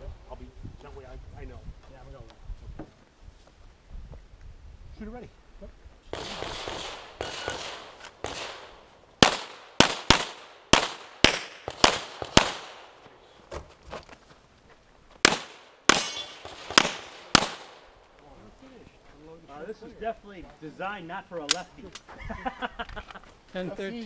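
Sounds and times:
handgun shots: 0:15.2 - 0:17.7.

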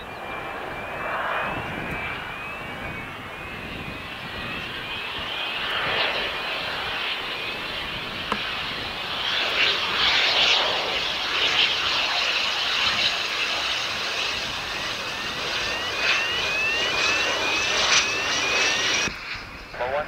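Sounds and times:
jet engine hiss and whine: 0:00.0 - 0:20.0
short rising chirps: 0:14.5 - 0:19.1
faint radio speech: 0:19.7 - 0:20.0.

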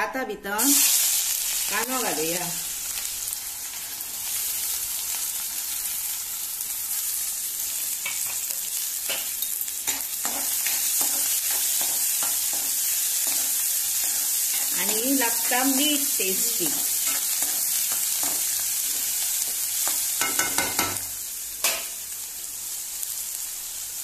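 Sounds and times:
onions sizzling in oil: 0:00.6 - 0:24.0.

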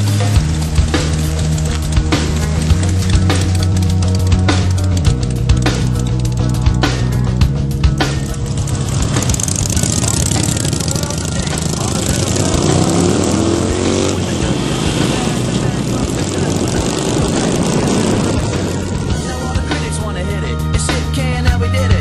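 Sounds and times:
steady rushing noise: 0:00.0 - 0:20.2
motorcycle engine revving: 0:00.0 - 0:21.4
motorcycles riding: 0:00.0 - 0:22.0.

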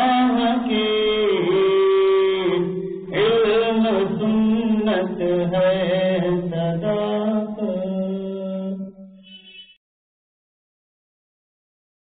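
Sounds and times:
person chanting: 0:00.0 - 0:09.1.

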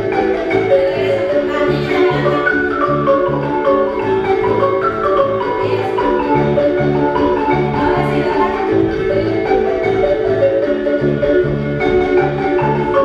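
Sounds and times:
marimba music: 0:00.0 - 0:13.0.

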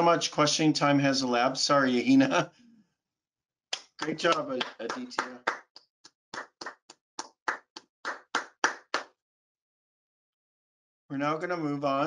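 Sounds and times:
hand clapping: 0:03.7 - 0:09.2.

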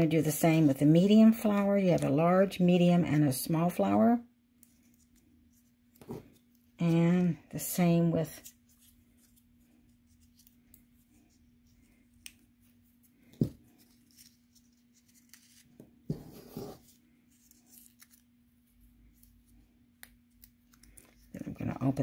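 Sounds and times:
paper crinkling: 0:13.7 - 0:15.8.

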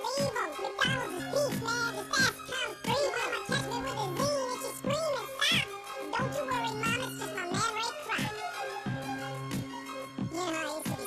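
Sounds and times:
sped-up rap vocals over a beat: 0:00.0 - 0:11.0.

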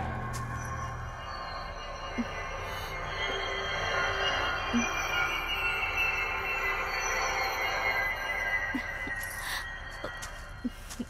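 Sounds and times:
eerie sustained high tones: 0:00.0 - 0:11.0.

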